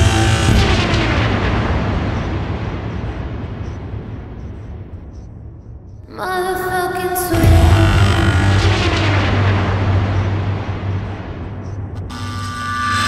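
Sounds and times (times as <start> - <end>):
band crash: 0.0 - 3.6, 7.3 - 13.0.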